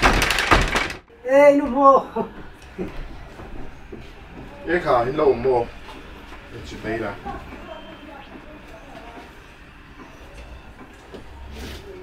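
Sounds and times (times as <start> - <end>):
faint murmured voices: 2.0 - 12.0.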